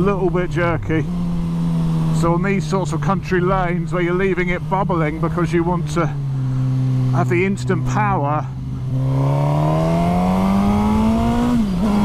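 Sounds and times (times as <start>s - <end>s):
motorcycle engine accelerating: 0.0s - 12.0s.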